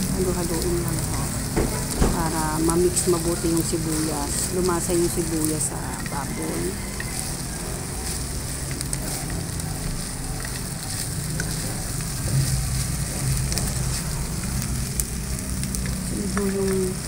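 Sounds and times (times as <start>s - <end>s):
meat and onions sizzling in oil: 0.0s - 17.0s
spatula scraping and tapping wok: 0.0s - 17.0s.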